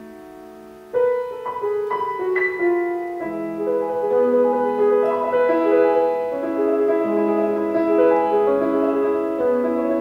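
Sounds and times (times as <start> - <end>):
grand piano playing classical piece: 0.0 - 10.0.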